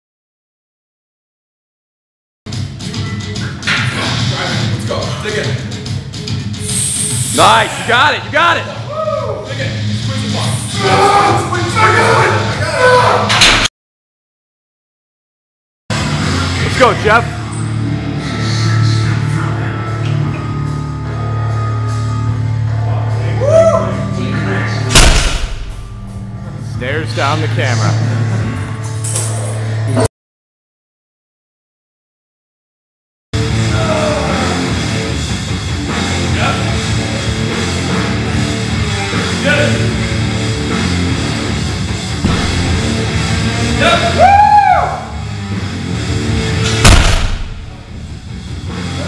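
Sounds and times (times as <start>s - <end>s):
background music: 2.5s - 13.3s, 15.9s - 30.1s, 33.4s - 49.0s
rock music: 33.4s - 49.0s
barbell thud on rubber floor: 46.8s - 47.8s.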